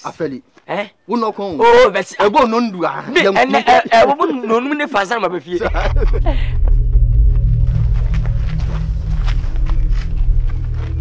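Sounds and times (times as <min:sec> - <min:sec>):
music with heavy bass: 0:05.6 - 0:11.0
footsteps on dirt: 0:06.7 - 0:11.0.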